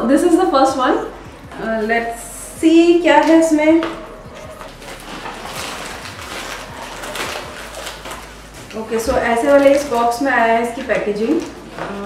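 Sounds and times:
packaging rustling and crinkling: 0:03.2 - 0:12.0.

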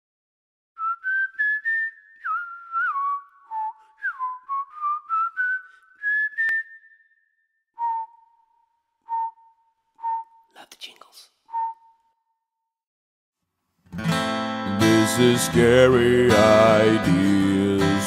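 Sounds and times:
whistle-like jingle melody: 0:00.9 - 0:10.5.

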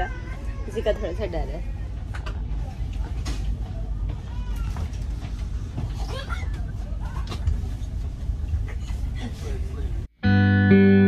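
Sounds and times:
train coach rumble: 0:00.0 - 0:10.1.

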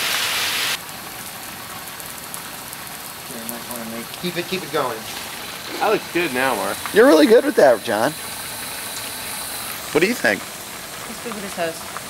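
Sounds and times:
garden hose spraying water: 0:00.0 - 0:12.0.

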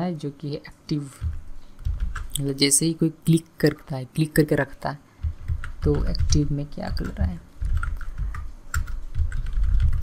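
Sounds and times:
computer keyboard typing: 0:01.2 - 0:02.7, 0:05.2 - 0:10.0.

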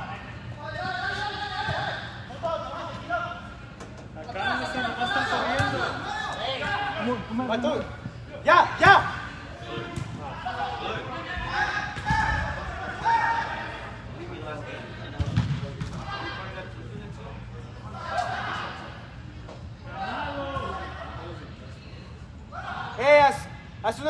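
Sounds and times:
players calling out: 0:00.0 - 0:23.7.

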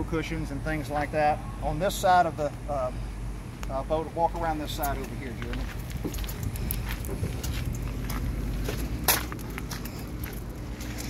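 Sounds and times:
steady low rumble: 0:00.0 - 0:11.0
footsteps on gravel: 0:04.3 - 0:11.0.

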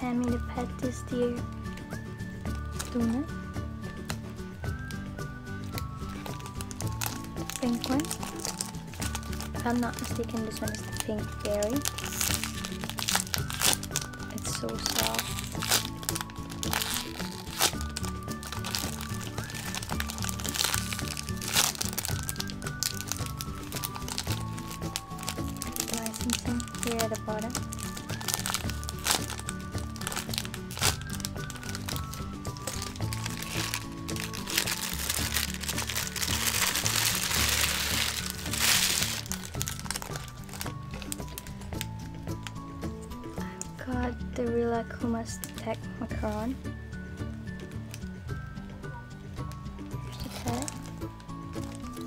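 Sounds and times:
background music: 0:00.0 - 0:52.0
plastic bags crinkling: 0:01.8 - 0:03.3, 0:03.9 - 0:43.8, 0:50.0 - 0:52.0.

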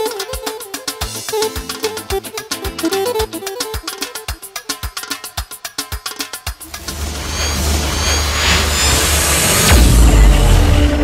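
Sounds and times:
party music with fast beat: 0:00.0 - 0:08.2
cinematic riser whoosh: 0:06.6 - 0:11.0
deep boom: 0:06.8 - 0:11.0.

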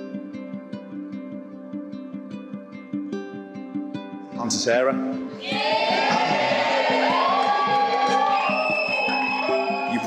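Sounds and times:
background music: 0:00.0 - 0:10.0
group of voices cheering: 0:05.4 - 0:10.0.

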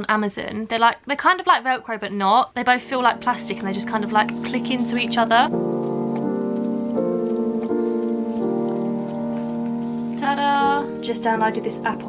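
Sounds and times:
background music with held chords: 0:02.7 - 0:12.0.

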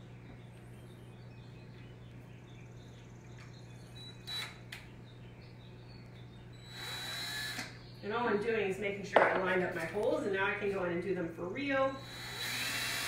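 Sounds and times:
steady low hum: 0:00.0 - 0:13.0
cordless drill running: 0:04.2 - 0:04.6, 0:06.6 - 0:07.8, 0:11.9 - 0:13.0.

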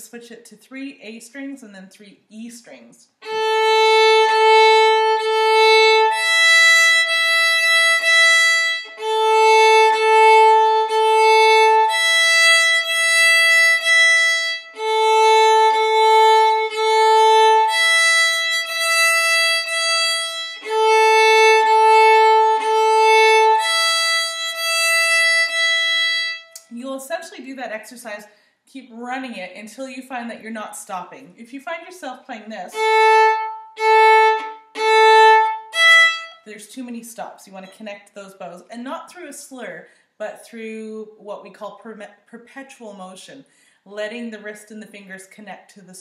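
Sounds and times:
solo fiddle long bow strokes: 0:03.2 - 0:26.6, 0:32.7 - 0:36.4.

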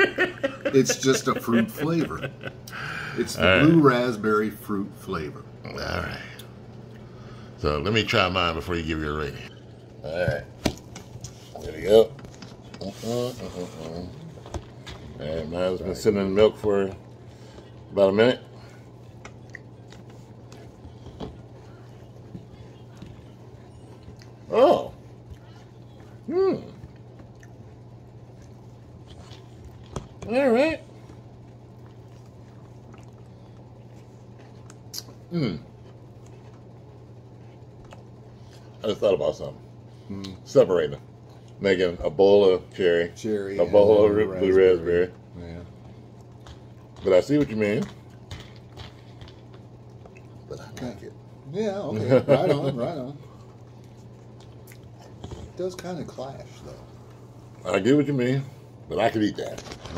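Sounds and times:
steady low hum: 0:00.0 - 0:59.9
chewing cereal: 0:09.3 - 0:39.0, 0:42.6 - 0:51.4, 0:53.2 - 0:57.8.

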